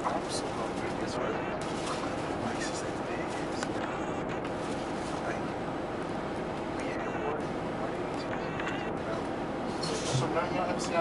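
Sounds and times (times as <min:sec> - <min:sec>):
bus diesel engine drone: 0:00.0 - 0:11.0
passengers' voices: 0:00.0 - 0:11.0.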